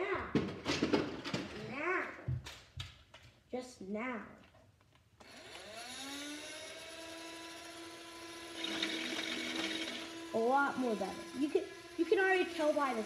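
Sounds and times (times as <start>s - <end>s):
toy gun motor whine: 5.2s - 13.0s.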